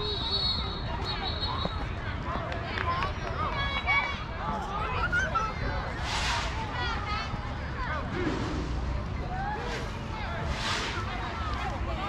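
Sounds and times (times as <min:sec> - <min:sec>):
children calling and chattering: 0:00.0 - 0:12.0
steady low rumble: 0:06.0 - 0:12.0.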